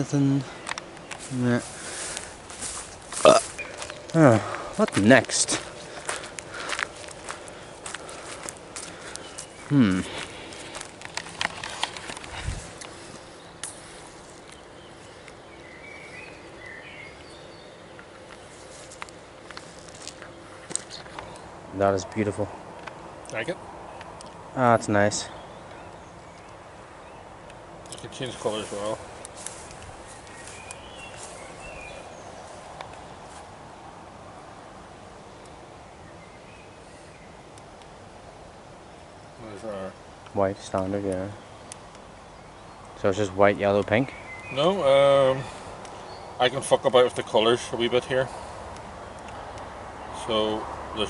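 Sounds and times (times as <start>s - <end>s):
steady hiss: 0.0s - 51.0s
faint bird chirps: 28.1s - 32.7s
small ticks: 48.7s - 49.7s.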